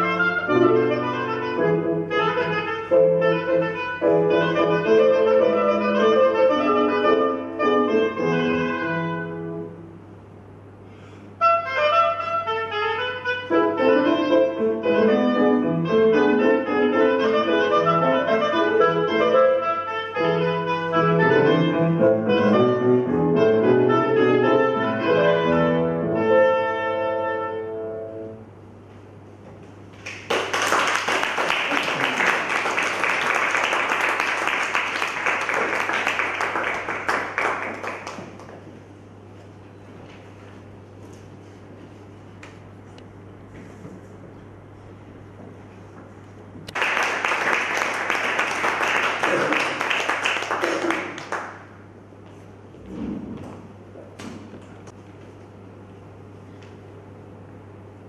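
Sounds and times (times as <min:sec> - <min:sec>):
clarinet melody: 0:00.0 - 0:09.8, 0:11.4 - 0:28.4
piano notes: 0:00.0 - 0:10.0, 0:11.5 - 0:28.5
audience applauding: 0:30.0 - 0:38.6, 0:46.7 - 0:51.7.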